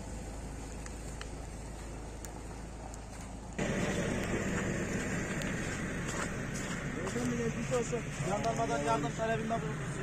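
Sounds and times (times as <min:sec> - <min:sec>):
vehicle engine idling: 0:00.0 - 0:10.0.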